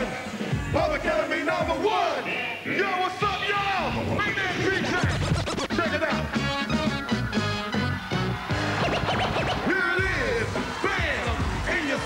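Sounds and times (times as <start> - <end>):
bass-heavy hip hop beat: 0.0 - 2.3, 3.2 - 12.0
turntable scratching: 3.8 - 6.8, 8.6 - 12.0.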